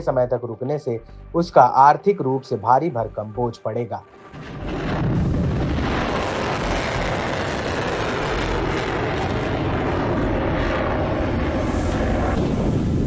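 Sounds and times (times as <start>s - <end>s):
rocket motor rushing roar: 4.2s - 13.0s.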